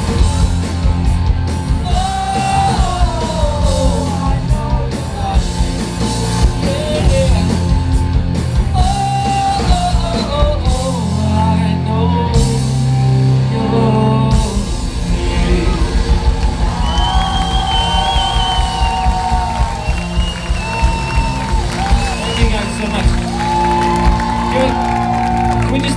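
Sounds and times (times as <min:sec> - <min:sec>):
bass guitar: 0:00.0 - 0:25.9
drums: 0:00.0 - 0:25.9
electric guitars: 0:00.0 - 0:25.9
man singing: 0:01.8 - 0:07.7, 0:08.7 - 0:16.0.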